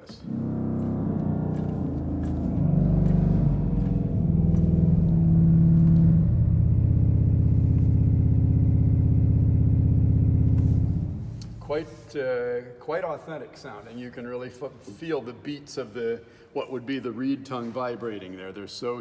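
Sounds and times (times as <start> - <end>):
very low pipe organ notes: 0.0 - 11.6.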